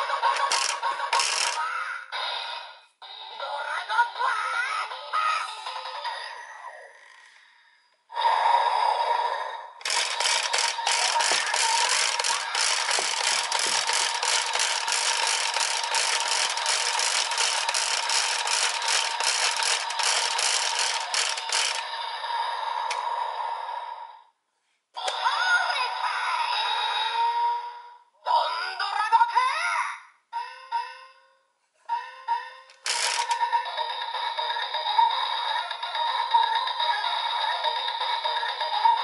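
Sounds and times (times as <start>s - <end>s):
toy wheel spinning and clicking: 0.0s - 1.8s, 9.8s - 22.1s, 32.7s - 39.0s
toy electronic sound effect: 0.0s - 2.6s, 9.8s - 22.0s, 32.5s - 39.0s.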